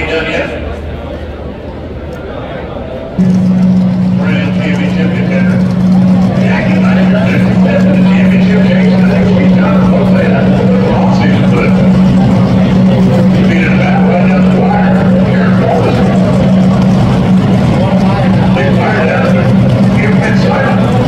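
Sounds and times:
loud steady machine drone: 0.0 - 21.0
announcer voice echoing: 3.2 - 21.0.

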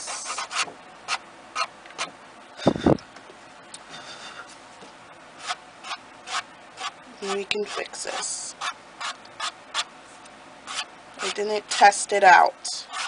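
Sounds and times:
fingertip rubbing cardstock: 0.0 - 0.7.

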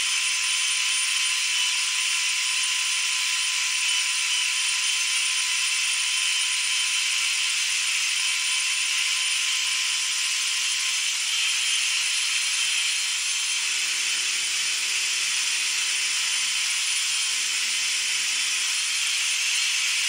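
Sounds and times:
electric screwdriver motor whirring: 0.0 - 20.0.

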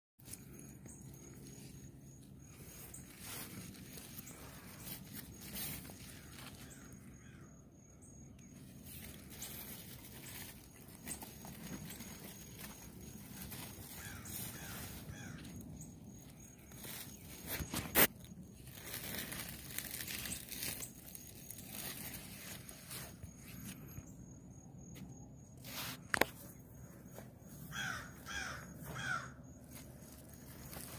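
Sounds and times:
leaves and vines rustling: 0.2 - 7.2, 8.5 - 23.9, 27.1 - 30.9.

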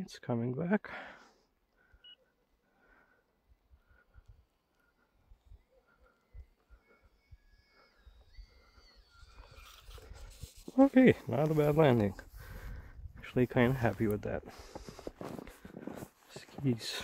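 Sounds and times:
distant small electric motors whine: 3.2 - 12.6
plane sliding on snow: 4.5 - 17.0.

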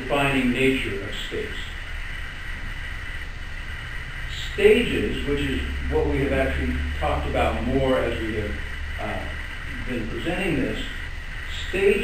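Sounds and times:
low rumble of room noise: 0.0 - 12.0.

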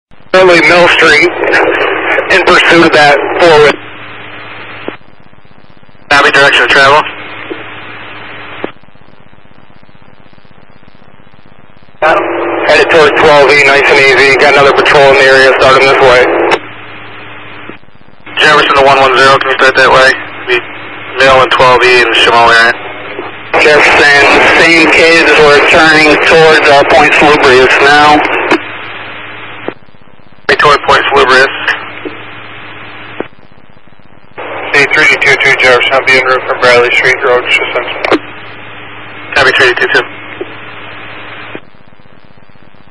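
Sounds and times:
low hum: 0.1 - 42.9
radio static hiss: 0.1 - 42.9
radio click: 1.0 - 3.8, 4.7 - 5.1, 7.3 - 7.8, 8.5 - 8.9, 12.0 - 16.7, 17.5 - 29.9, 30.5 - 33.6, 34.4 - 38.6, 39.4 - 42.4.

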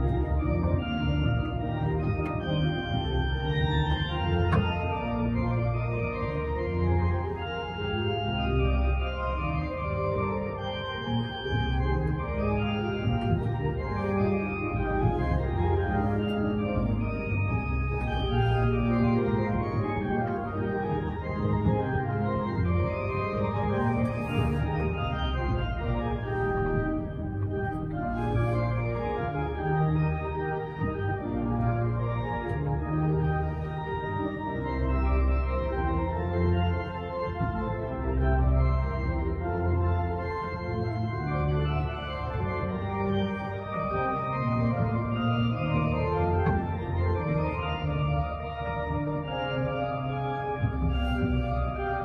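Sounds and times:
pipe organ playing chords: 0.0 - 52.0.

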